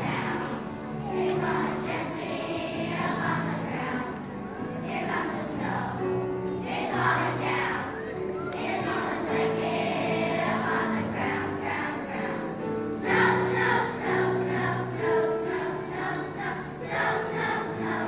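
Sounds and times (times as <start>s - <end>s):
children's choir singing: 0.0s - 18.0s
held accompaniment notes: 0.0s - 18.0s.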